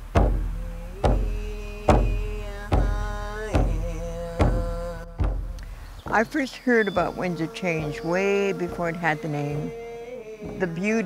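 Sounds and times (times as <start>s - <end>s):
deep hand drum booms: 0.0s - 6.2s
person singing long notes: 0.4s - 11.0s.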